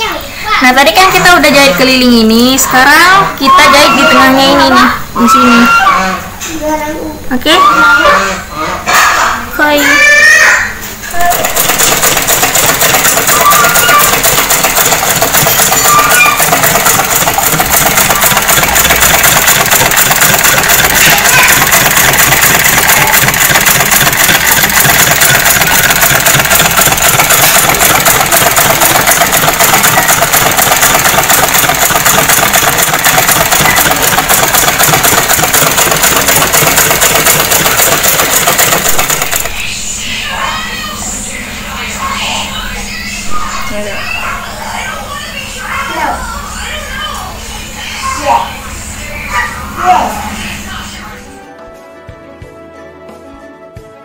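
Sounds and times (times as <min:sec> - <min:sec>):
sewing machine stitching: 0:11.0 - 0:39.7.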